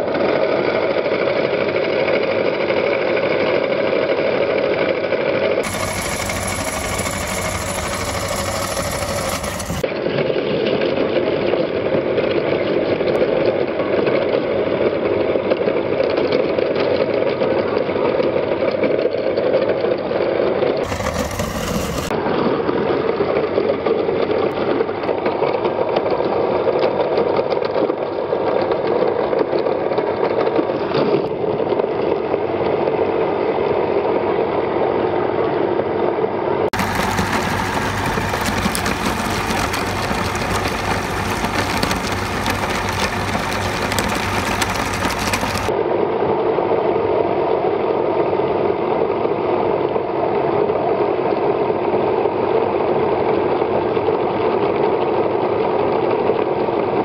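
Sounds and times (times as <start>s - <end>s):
meat grinder grinding fish: 5.6s - 9.8s, 20.8s - 22.1s, 36.8s - 45.7s.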